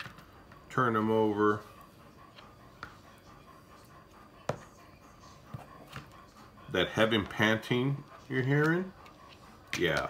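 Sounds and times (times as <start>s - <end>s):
dog panting heavily: 0.0s - 10.0s.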